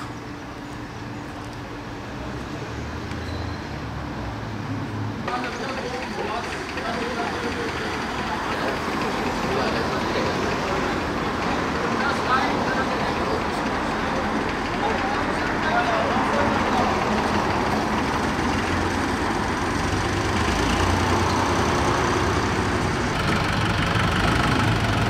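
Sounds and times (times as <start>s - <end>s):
outdoor street noise: 0.0s - 25.0s
murmur of voices: 5.2s - 19.9s
tractor engine idling: 5.3s - 25.0s.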